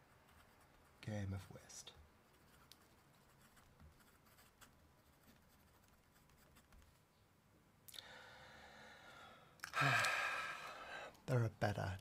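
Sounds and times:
fountain pen scratching paper: 2.3 - 6.8.

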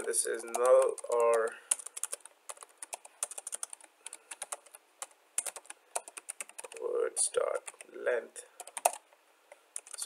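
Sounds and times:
computer keyboard typing: 0.0 - 8.0, 8.6 - 9.1, 9.7 - 10.0.

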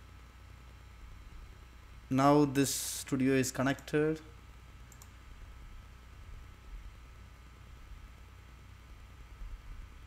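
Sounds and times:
faint low steady hum: 0.0 - 10.0
computer mouse clicking: 4.9 - 5.2.

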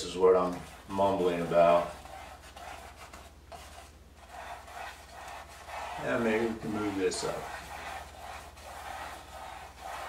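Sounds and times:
brush strokes on canvas: 0.0 - 10.0.

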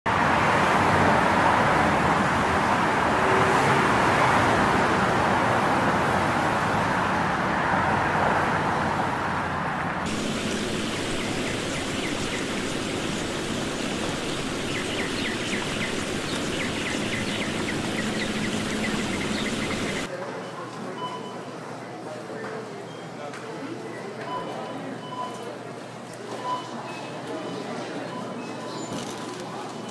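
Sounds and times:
parking garage traffic noise: 0.1 - 29.9
steady hiss: 10.1 - 20.1.

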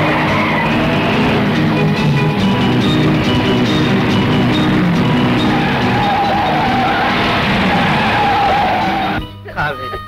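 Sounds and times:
wavering high tone: 0.0 - 9.2
background film score: 0.0 - 9.4
jeep engine and road noise: 0.0 - 10.0.

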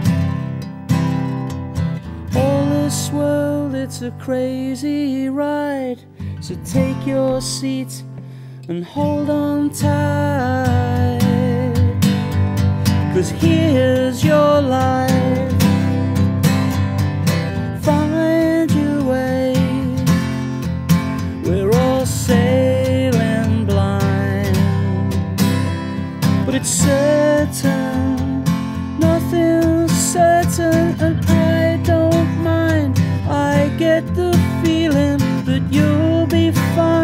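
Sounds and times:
strummed acoustic guitar: 0.0 - 37.0.

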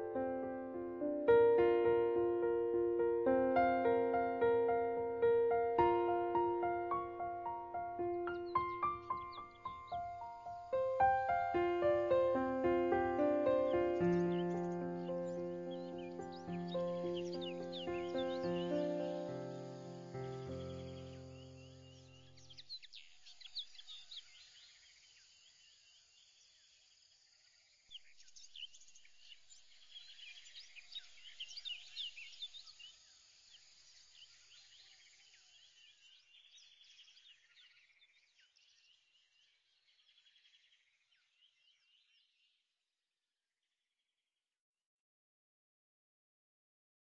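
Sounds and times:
music track: 0.0 - 21.4
birds chirping: 1.0 - 24.8.

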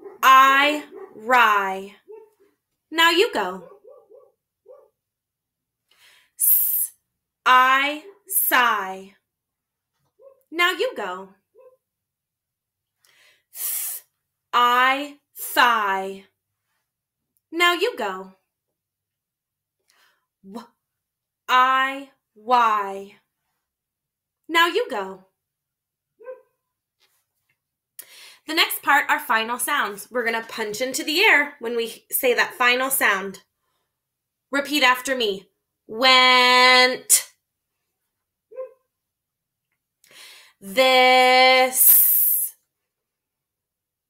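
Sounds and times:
faint dog barking: 0.0 - 1.3, 2.0 - 2.6, 3.6 - 5.0, 26.2 - 26.6, 38.5 - 38.9.

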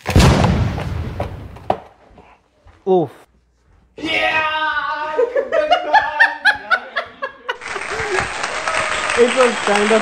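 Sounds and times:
applause: 7.6 - 10.0.

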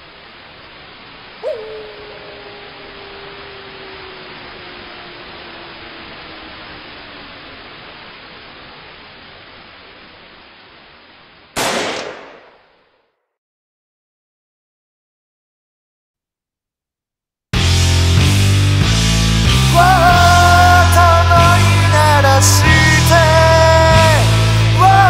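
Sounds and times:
static hiss: 0.0 - 12.9
tone sliding down in pitch: 1.4 - 8.2
loud bang: 11.6 - 12.8.

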